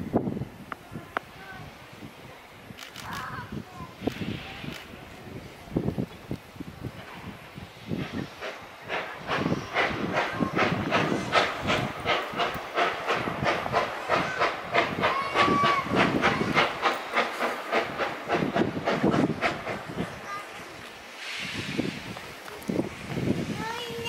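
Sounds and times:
steam locomotive exhaust chuffing: 1.6 - 24.0.

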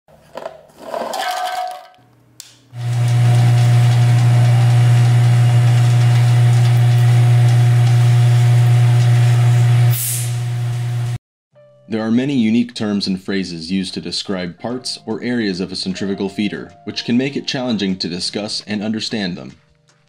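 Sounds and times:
machine motor humming: 2.8 - 11.2.

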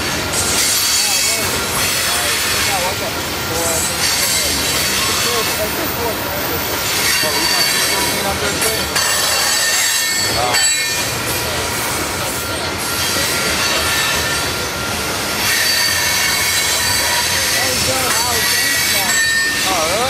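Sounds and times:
rumble of train wheels on rail: 0.0 - 20.0
high-pitched metallic wheel squeal: 0.4 - 20.0.

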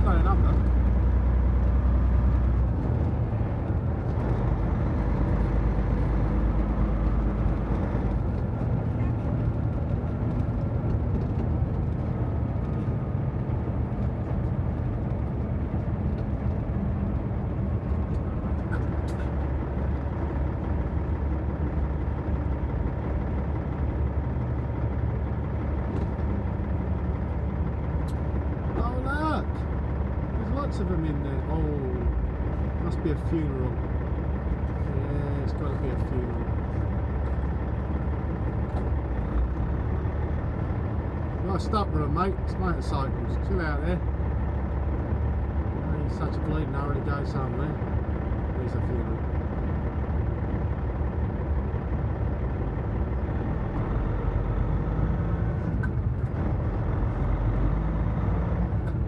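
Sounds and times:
road noise inside cab: 0.0 - 59.0
truck engine droning: 0.0 - 59.0.

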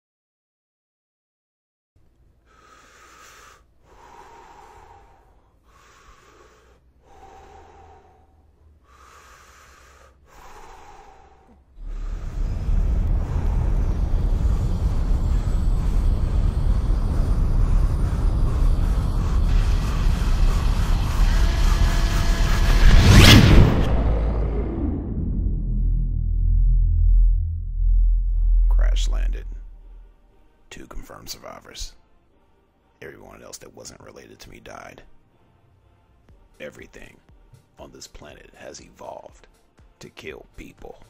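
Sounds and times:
breathing through masks: 2.4 - 20.9
loud steady spacecraft rumble: 10.4 - 30.2.

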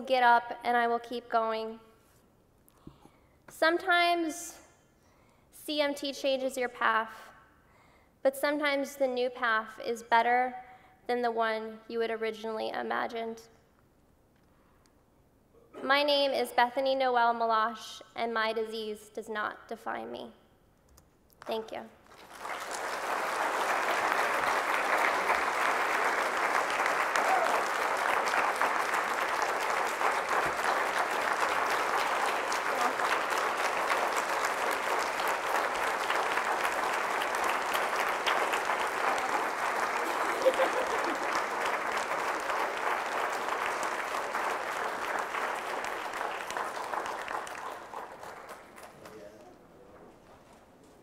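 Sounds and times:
audience applauding: 22.0 - 49.2.

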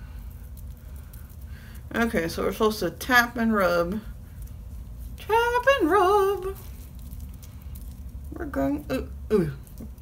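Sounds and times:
soft ticks of wet sheet mask: 0.0 - 2.7.

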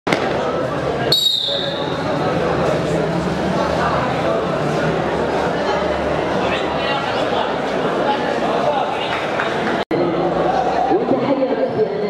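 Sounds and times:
murmur of voices: 0.1 - 12.0
long high whistle: 1.1 - 2.0.

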